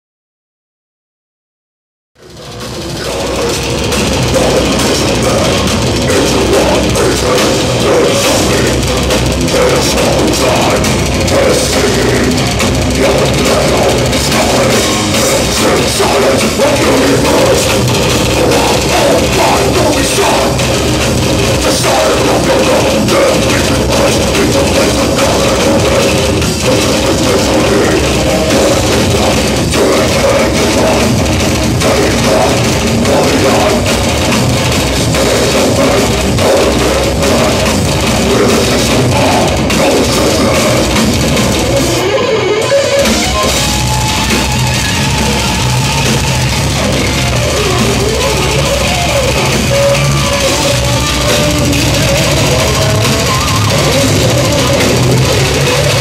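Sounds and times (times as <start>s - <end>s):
distorted electric guitars: 2.2s - 56.0s
fast drumming: 2.2s - 56.0s.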